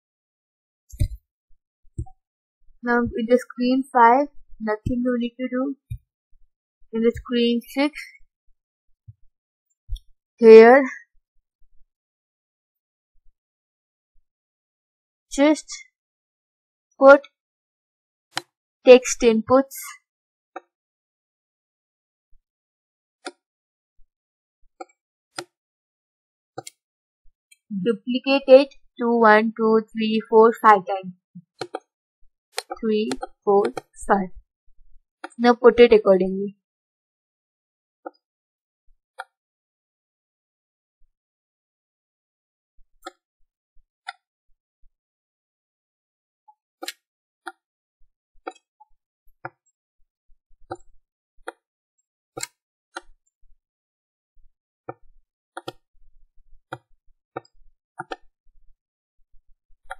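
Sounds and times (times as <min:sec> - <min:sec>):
computer mouse clicks: 0:32.6 - 0:34.0, 0:55.6 - 0:55.8.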